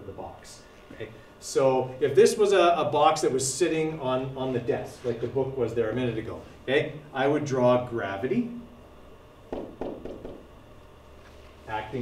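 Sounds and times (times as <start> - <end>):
faint room hum: 0.0 - 12.0
stylus tapping touchscreen: 9.5 - 10.4.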